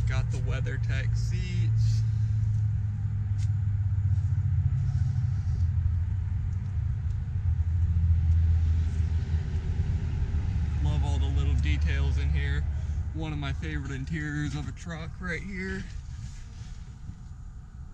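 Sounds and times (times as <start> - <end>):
vehicle engine idling: 0.0 - 17.9.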